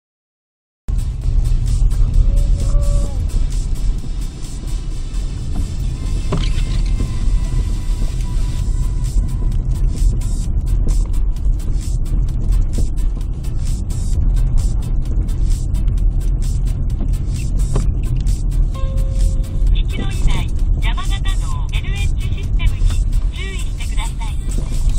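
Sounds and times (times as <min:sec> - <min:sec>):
car engine and tyre rumble: 0:00.9 - 0:24.9.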